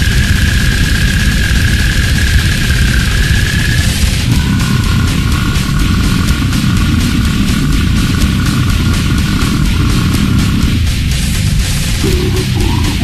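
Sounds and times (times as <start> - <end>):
extreme metal music: 0.0 - 13.0.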